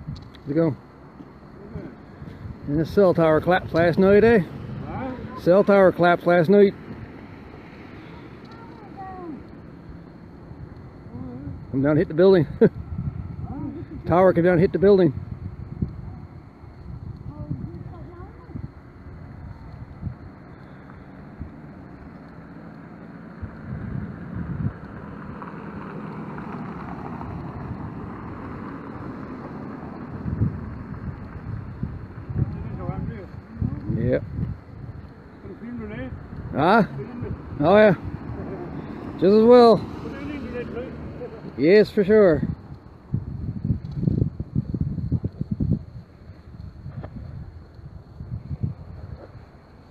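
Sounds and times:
wind on microphone: 0:00.0 - 0:00.4, 0:01.8 - 0:05.7, 0:12.5 - 0:22.1, 0:23.3 - 0:39.2, 0:41.0 - 0:49.9
street noise rumble: 0:00.0 - 0:49.9
car driving past: 0:01.6 - 0:12.2, 0:20.1 - 0:33.6, 0:35.3 - 0:43.0
distant machinery: 0:13.5 - 0:43.1.

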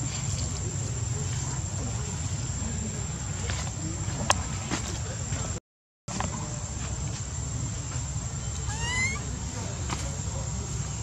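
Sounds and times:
baby monkey whimpering cry: 0:08.6 - 0:09.3.

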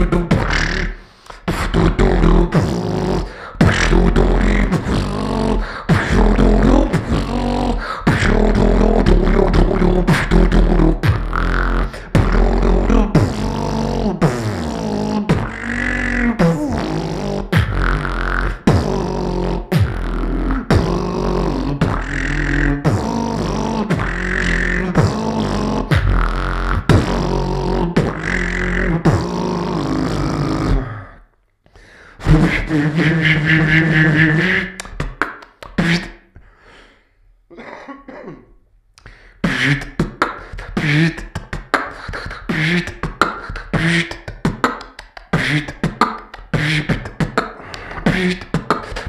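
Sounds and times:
person beatboxing: 0:00.0 - 0:31.3, 0:32.0 - 0:36.8, 0:39.0 - 0:49.0.

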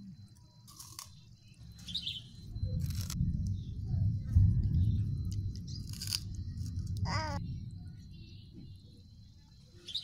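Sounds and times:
faint steady high tone: 0:00.0 - 0:10.0
bird chirping: 0:00.5 - 0:10.0
low rumble: 0:02.3 - 0:09.8.

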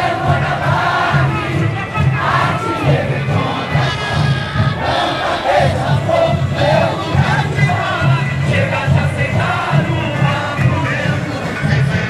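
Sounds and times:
crowd singing: 0:00.0 - 0:12.0
deep drum beat: 0:00.0 - 0:12.0.

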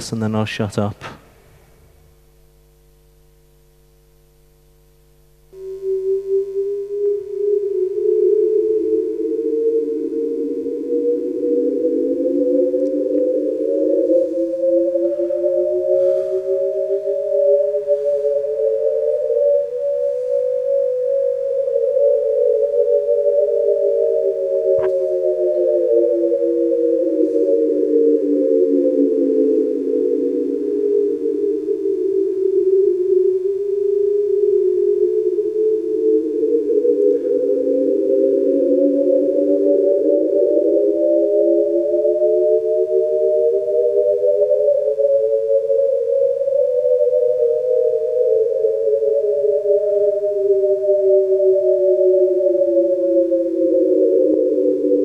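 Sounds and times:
electronic drone beating tones: 0:05.4 - 0:44.2.

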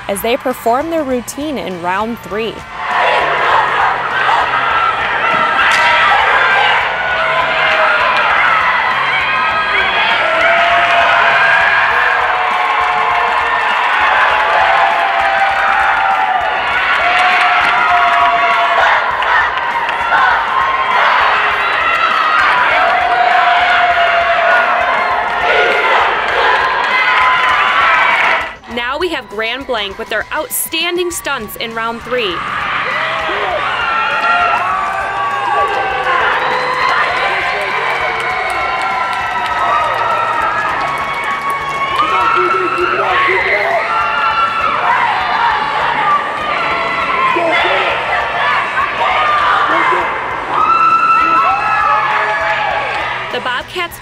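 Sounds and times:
crowd cheering: 0:00.0 - 0:54.0
cheerleaders shouting in unison: 0:02.5 - 0:12.4.

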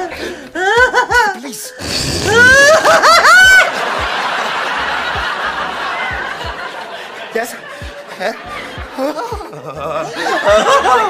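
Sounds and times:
man laughing hard: 0:00.0 - 0:11.0
show background sound: 0:00.0 - 0:11.0.

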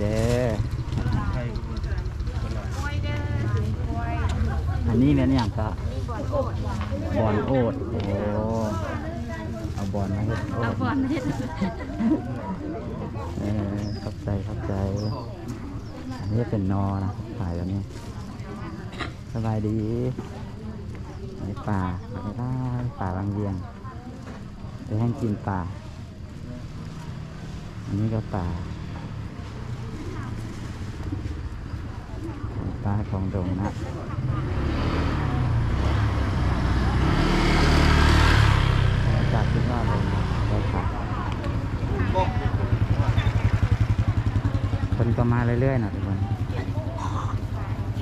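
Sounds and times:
scooter engine puttering: 0:00.0 - 0:05.6, 0:34.2 - 0:48.0
motorbike passing: 0:00.0 - 0:48.0
outdoor background noise: 0:00.0 - 0:48.0.

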